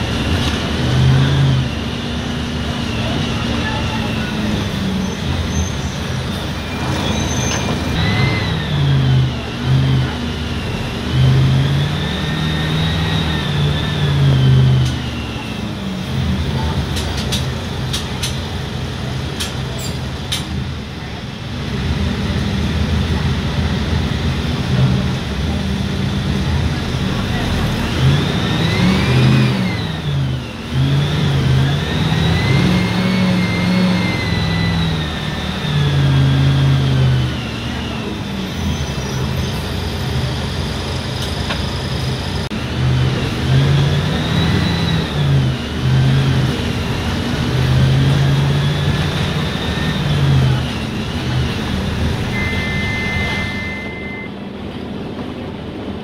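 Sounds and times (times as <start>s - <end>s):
bus engine accelerating: 0.0s - 56.0s
high whine: 50.6s - 54.5s
electronic beep: 52.3s - 54.4s.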